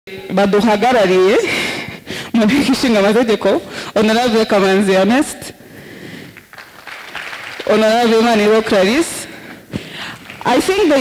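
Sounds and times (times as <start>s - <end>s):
person speaking: 0.1s - 5.6s, 7.6s - 11.0s.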